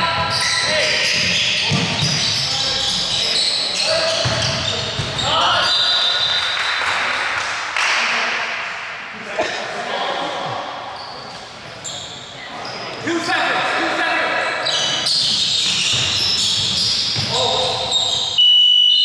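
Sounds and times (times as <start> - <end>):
sneakers squeaking on floor: 0.0 - 6.6, 10.9 - 13.0, 14.4 - 18.6.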